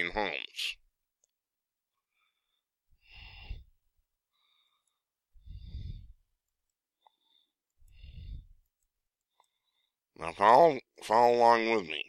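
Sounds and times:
man breathing out: 2.2 - 3.7, 4.4 - 6.2.

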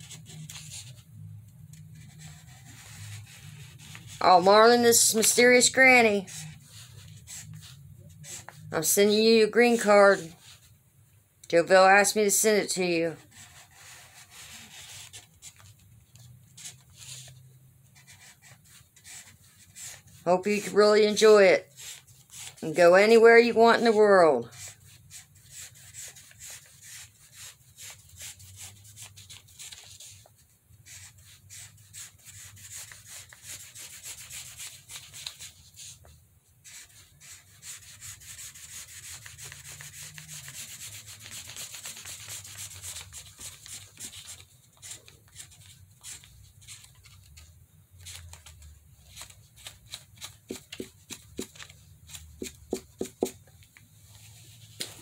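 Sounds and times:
marker scratching on paper: 0.0 - 10.7, 11.9 - 46.9, 49.6 - 53.4.

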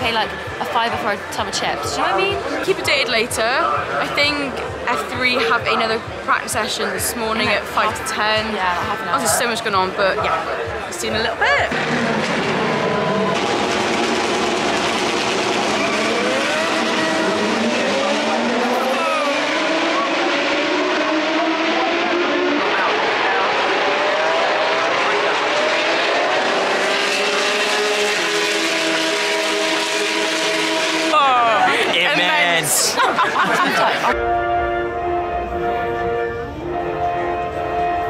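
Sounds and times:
voices: 0.0 - 11.8, 17.7 - 20.1
racing car engines accelerating: 0.0 - 38.0.

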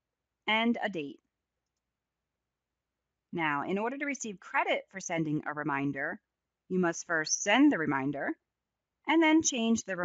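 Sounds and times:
narrator speaking: 0.5 - 1.2, 3.4 - 8.3, 9.1 - 10.0.

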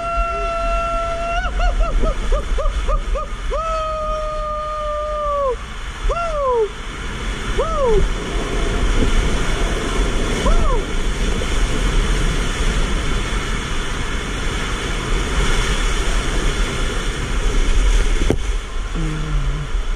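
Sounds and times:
person shouting woo: 0.0 - 6.8, 7.6 - 8.1, 10.4 - 10.9
body sliding down water slide: 0.0 - 19.9
water rushing: 0.0 - 19.9.

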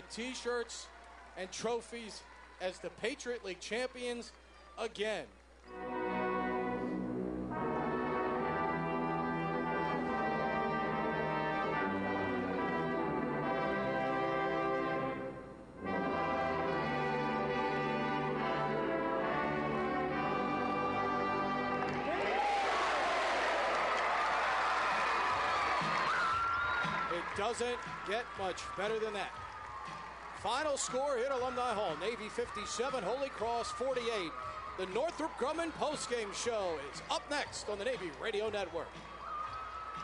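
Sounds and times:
crowd cheering: 0.0 - 3.7, 21.7 - 40.0
brass band playing anthem: 5.7 - 23.3.

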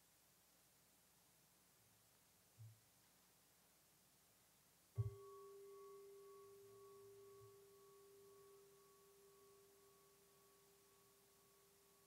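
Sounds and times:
singing bowl ringing: 5.0 - 12.0.

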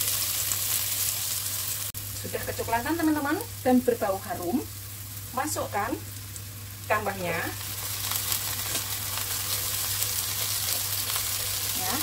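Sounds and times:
food sizzling in oil: 0.0 - 12.0.

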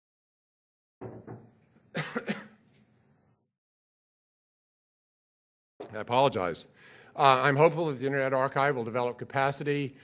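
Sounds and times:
man coughing: 1.9 - 2.6.

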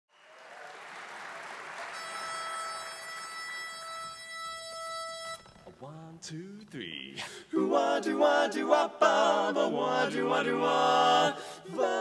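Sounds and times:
audience applause: 0.1 - 3.6
pitch pipe note: 2.0 - 5.8.

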